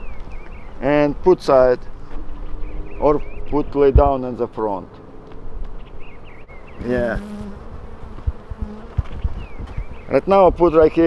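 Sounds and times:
honeybees buzzing: 4.9 - 10.1.

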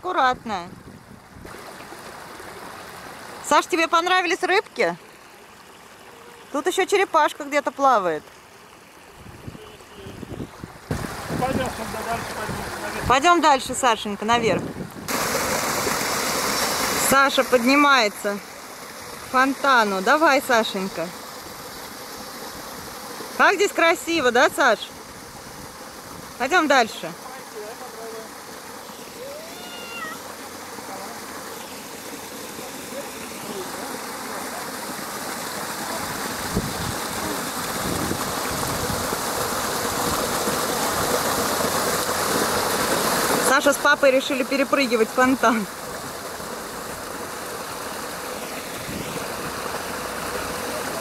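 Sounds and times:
water rushing over stones: 0.0 - 51.0.

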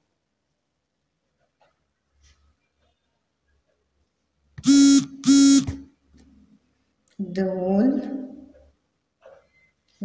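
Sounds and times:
loud buzzing tones: 4.6 - 5.9.

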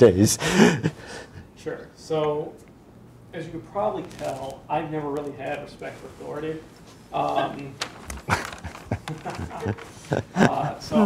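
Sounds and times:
man chuckling: 0.4 - 1.3, 8.1 - 11.0.

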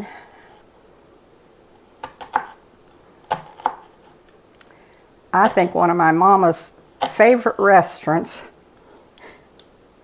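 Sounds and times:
knife chopping onion on board: 2.0 - 2.6, 3.3 - 4.0.

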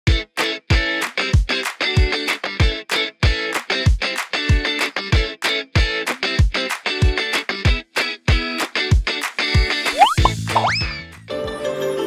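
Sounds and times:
rising pitch slides: 10.0 - 10.8.

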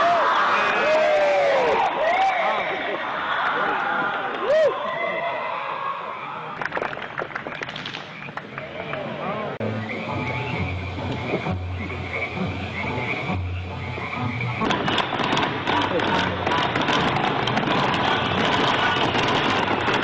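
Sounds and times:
low droning hum: 9.6 - 20.0
pyrotechnics crackling and fizzing: 9.9 - 20.0.

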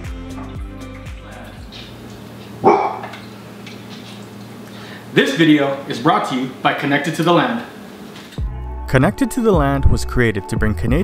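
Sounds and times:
dog barking: 2.6 - 3.2.

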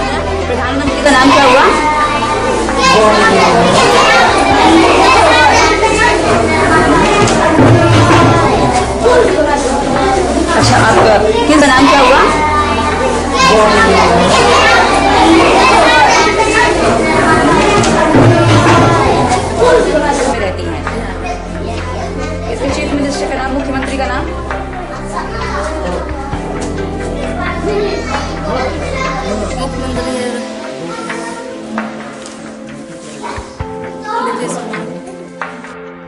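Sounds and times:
children talking and calling out: 0.0 - 35.4.

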